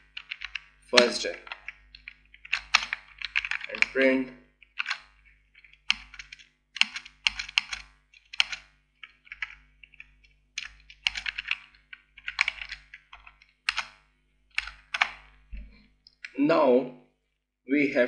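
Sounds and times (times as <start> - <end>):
keyboard typing: 0.0 - 16.4.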